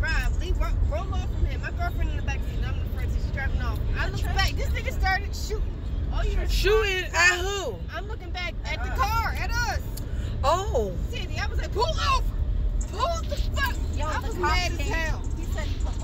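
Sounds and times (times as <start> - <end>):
car road rumble from inside: 0.0 - 16.0.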